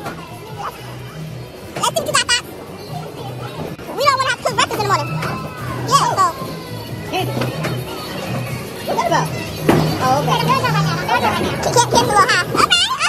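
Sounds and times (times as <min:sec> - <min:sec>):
high-pitched voices chattering: 0:00.0 - 0:13.0.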